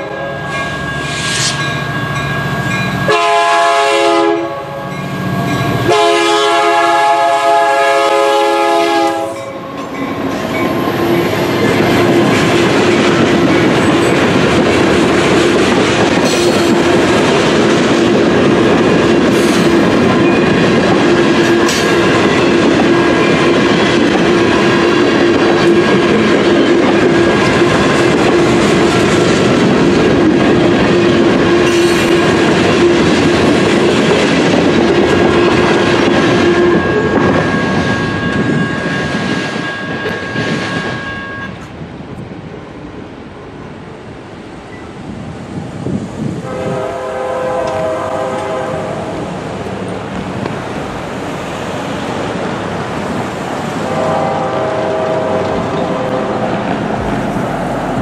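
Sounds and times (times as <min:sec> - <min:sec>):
locomotive horn blasts: 0:00.0 - 0:00.5, 0:03.0 - 0:05.0, 0:05.8 - 0:09.5, 0:46.4 - 0:49.2, 0:53.8 - 0:56.7
freight train rolling: 0:00.0 - 0:58.0.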